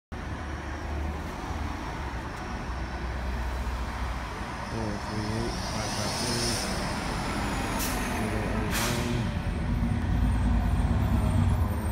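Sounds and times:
bus approaching: 0.1 - 11.9
street traffic rumble: 0.1 - 11.9.

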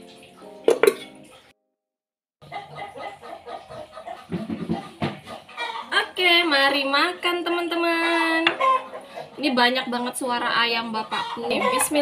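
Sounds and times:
metal spoon clinking dishes: 0.7 - 1.2
chickens clucking: 2.4 - 12.0.

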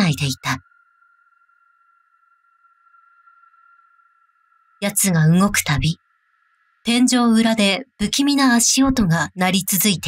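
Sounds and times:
faint high-pitched drone: 0.0 - 10.0.

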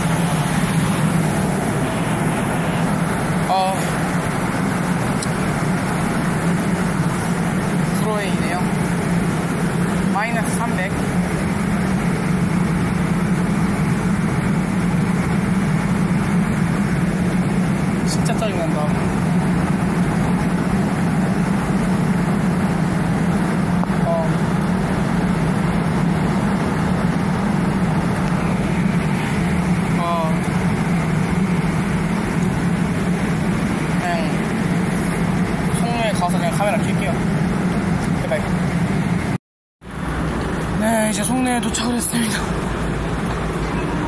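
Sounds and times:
electric train hum and rumble: 0.0 - 44.0.

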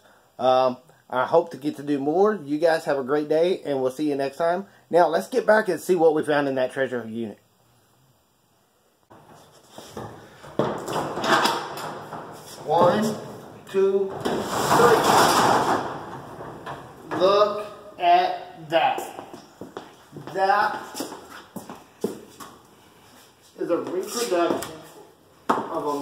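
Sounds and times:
footsteps: 9.1 - 17.9, 18.8 - 26.0
roll-up door clatter: 14.1 - 17.1.

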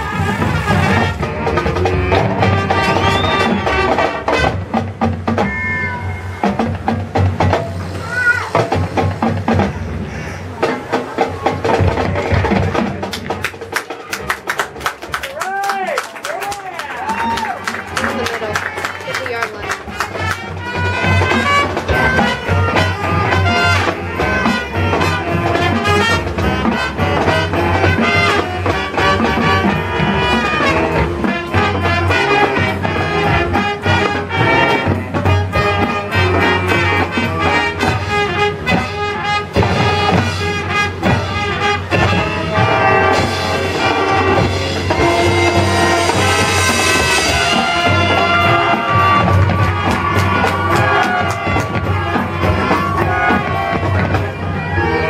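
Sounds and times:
sharp drum strokes: 0.0 - 14.1, 19.3 - 55.0
marching band brass: 0.0 - 55.0.

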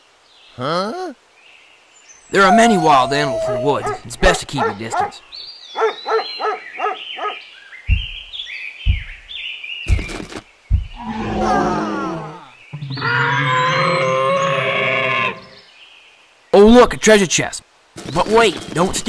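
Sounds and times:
high yips: 2.3 - 5.1
thumps: 7.9 - 8.3, 8.9 - 9.3, 9.9 - 11.0
loud roar: 11.0 - 15.6.

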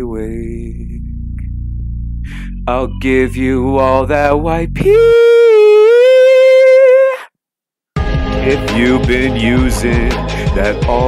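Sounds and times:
backing music: 8.0 - 11.0.

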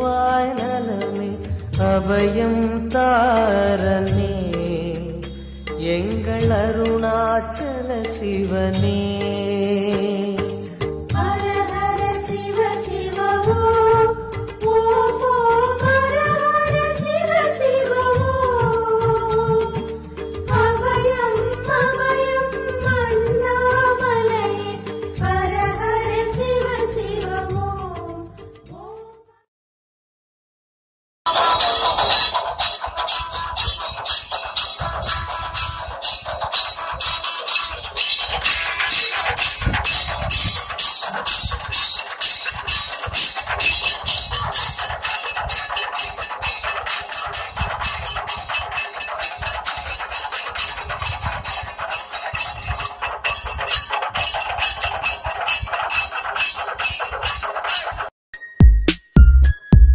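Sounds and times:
drums and metallic percussion: 0.0 - 28.8, 31.3 - 59.9.

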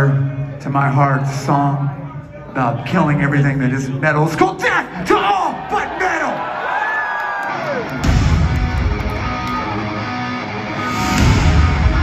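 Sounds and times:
electric guitar riff: 7.8 - 12.0
heavy metal band playing live: 7.9 - 12.0.

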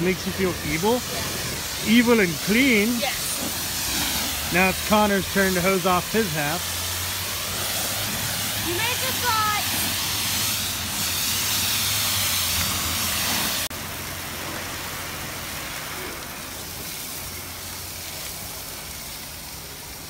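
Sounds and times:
pressure washer jet hissing: 0.0 - 20.0
water spattering on metal: 0.0 - 20.0.

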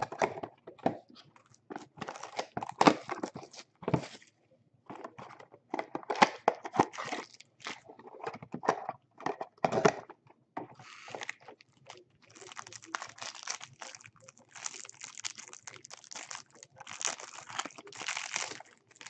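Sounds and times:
plastic wrappers crinkling: 10.8 - 19.0.

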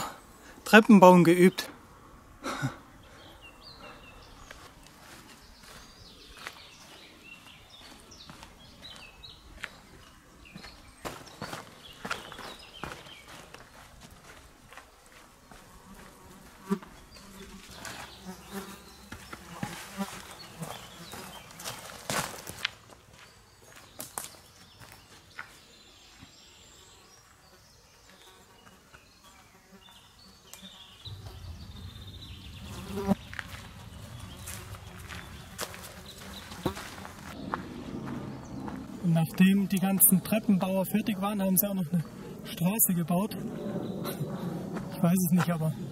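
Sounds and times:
insect buzzing: 15.5 - 21.3, 28.1 - 37.3
low rumble: 31.1 - 35.5, 37.3 - 39.2
boot footsteps on stone: 34.5 - 38.8.

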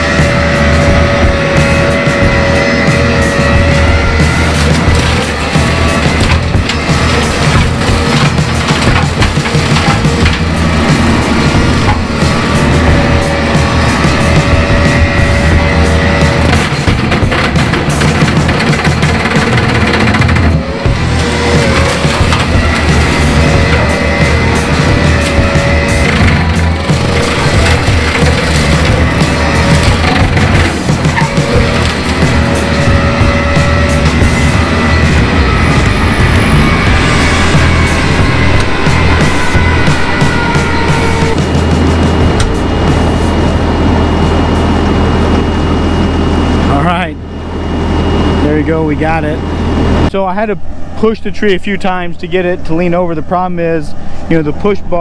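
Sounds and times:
brush mower whining: 0.0 - 50.5
machine engine revving: 0.0 - 51.0.

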